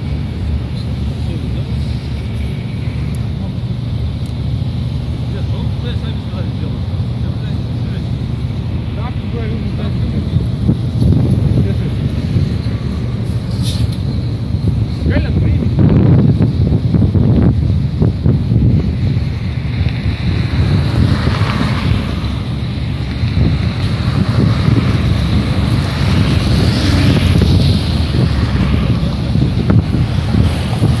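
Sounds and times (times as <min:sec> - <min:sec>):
road traffic passing: 0:00.0 - 0:31.0
wind buffeting microphone: 0:00.0 - 0:31.0.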